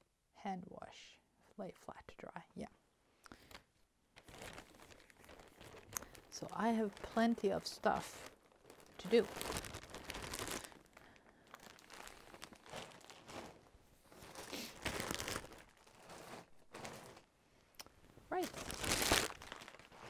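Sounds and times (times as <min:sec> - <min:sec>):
plastic bag crinkling: 0:04.2 - 0:17.4, 0:18.3 - 0:20.0.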